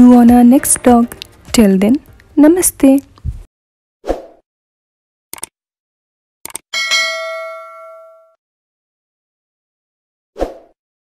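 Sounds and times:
notification bell ding: 0:06.8 - 0:08.4.

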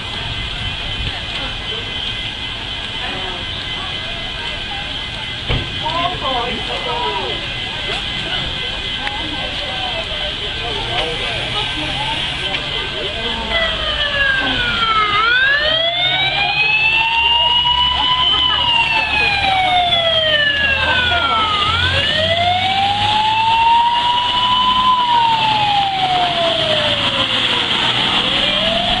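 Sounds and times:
fire truck siren wailing: 0:00.0 - 0:29.0.

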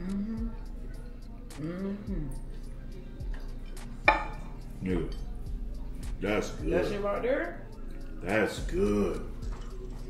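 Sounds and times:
plate clinking on counter: 0:04.1 - 0:04.4.

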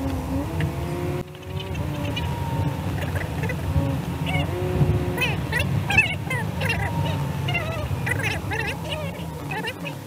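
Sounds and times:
car road noise: 0:00.0 - 0:10.0
pitch-bending calls: 0:00.0 - 0:10.0.

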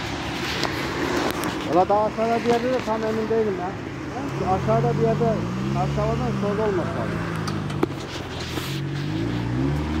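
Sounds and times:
car engine revving: 0:04.1 - 0:10.0.

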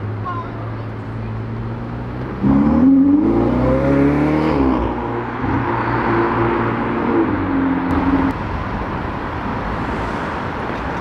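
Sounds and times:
car engine accelerating: 0:01.0 - 0:08.4.

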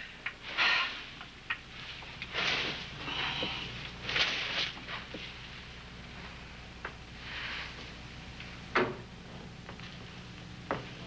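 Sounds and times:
mop swishing across floor: 0:01.8 - 0:05.5.

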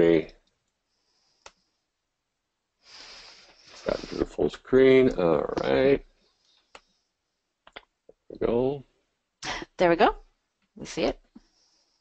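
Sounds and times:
man speaking: 0:00.0 - 0:00.3, 0:03.0 - 0:06.0, 0:08.2 - 0:08.8
breath into microphone: 0:02.9 - 0:04.2.

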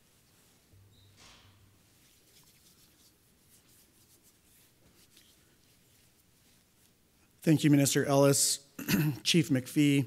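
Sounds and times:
light scratches: 0:00.3 - 0:07.0.

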